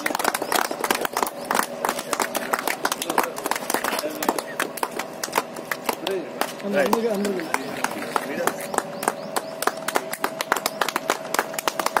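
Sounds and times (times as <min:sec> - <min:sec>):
group clapping hands: 0:00.0 - 0:12.0.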